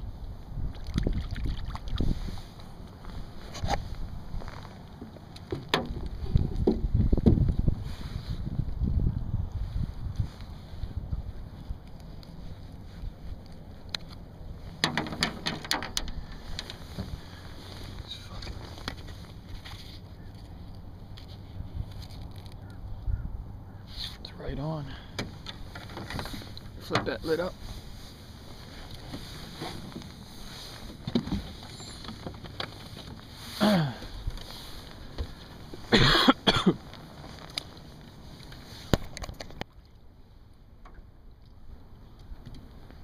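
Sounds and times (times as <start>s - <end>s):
wind rumbling on microphone: 0.0s - 43.0s
camera rustles and ticks: 10.4s - 22.8s, 28.5s - 33.3s, 36.8s - 39.7s
clicks and knocks of fishing tackle: 11.8s - 17.1s, 17.8s - 22.8s, 36.9s - 39.8s.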